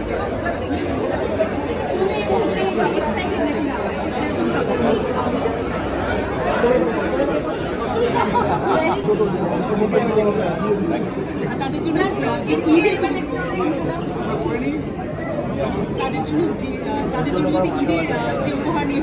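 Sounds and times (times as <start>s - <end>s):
babble of voices: 0.0s - 19.0s.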